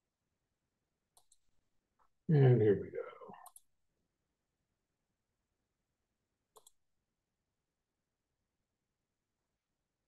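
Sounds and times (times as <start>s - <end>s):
computer mouse clicking: 1.1s - 1.6s, 3.4s - 3.8s, 6.5s - 6.9s.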